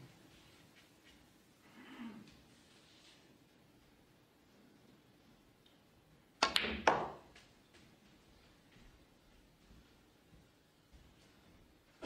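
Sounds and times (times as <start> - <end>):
cue tip striking ball: 6.4 - 7.3
snooker balls clicking together: 6.4 - 7.4.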